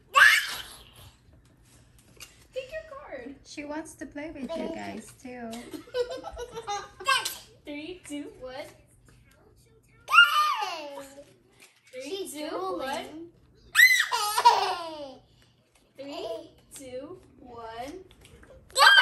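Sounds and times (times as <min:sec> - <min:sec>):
children squealing and laughing: 0:13.7 - 0:14.6, 0:18.8 - 0:19.0.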